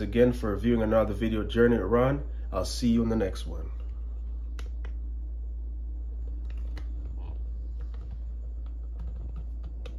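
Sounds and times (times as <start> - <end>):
steady low hum: 0.0 - 9.9.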